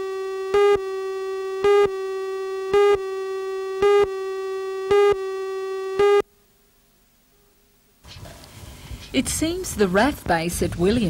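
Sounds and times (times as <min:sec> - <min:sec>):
countdown beeps: 0:00.0 - 0:06.2
steady buzzy tone: 0:00.0 - 0:09.8.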